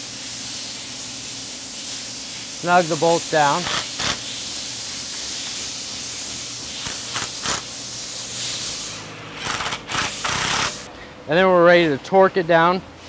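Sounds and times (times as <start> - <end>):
steady background hiss: 0.0 - 13.0
hand ratchet clicking: 3.5 - 4.2, 6.8 - 7.7, 9.4 - 10.9.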